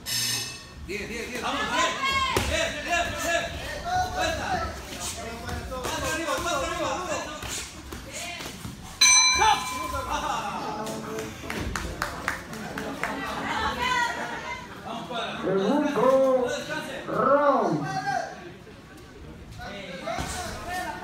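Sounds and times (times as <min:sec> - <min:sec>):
ring bell strike: 0:09.0 - 0:10.2.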